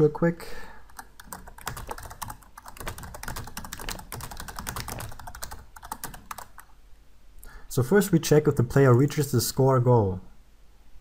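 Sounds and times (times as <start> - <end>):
typing on computer keyboard: 0.9 - 6.7.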